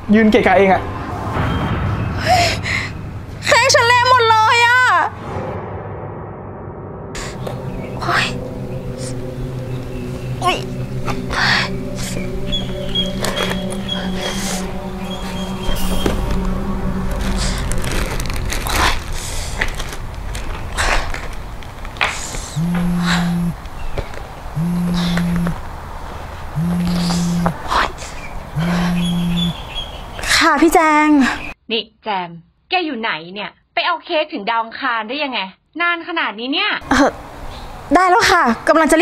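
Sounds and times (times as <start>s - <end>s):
high-pitched wavering cry: 7.2s - 19.8s, 26.6s - 29.7s
plastic bag crinkling: 17.7s - 22.0s.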